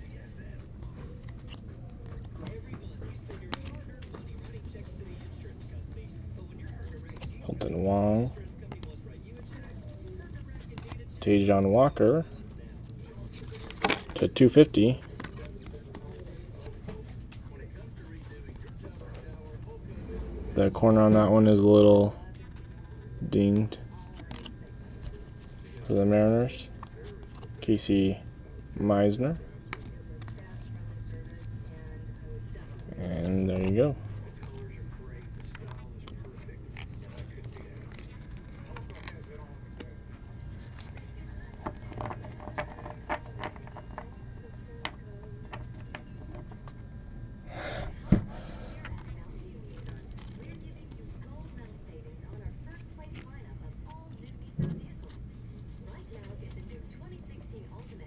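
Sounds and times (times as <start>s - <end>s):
cards being shuffled: 0.0s - 19.9s, 22.2s - 27.6s, 28.2s - 46.8s, 48.0s - 58.0s
low hum: 15.0s - 58.0s.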